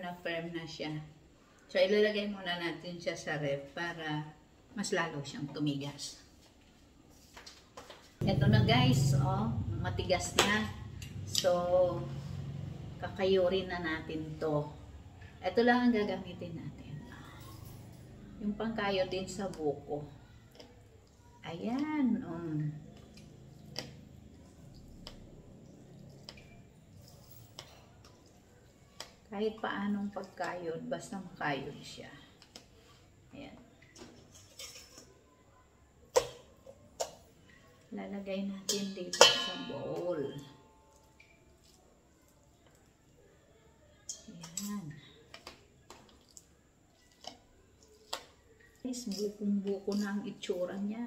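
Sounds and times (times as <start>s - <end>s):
metal scraper raking jelly: 49.0s - 50.4s.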